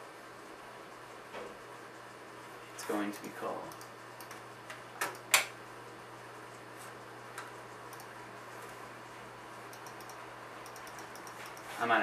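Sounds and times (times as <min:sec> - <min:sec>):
mouse clicks: 0:07.9 - 0:08.1, 0:09.7 - 0:11.7.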